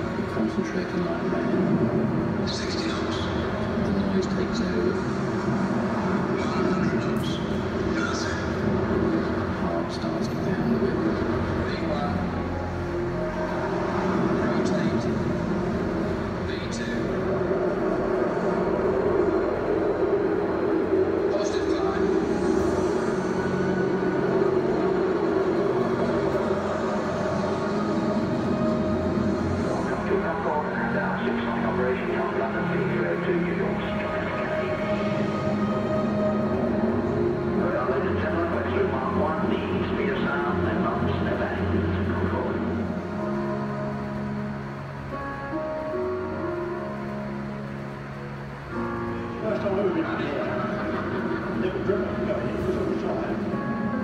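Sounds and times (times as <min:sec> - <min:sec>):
indistinct voices: 0:00.0 - 0:44.2
film soundtrack music: 0:00.0 - 0:54.0
jet engine drone: 0:00.0 - 0:54.0.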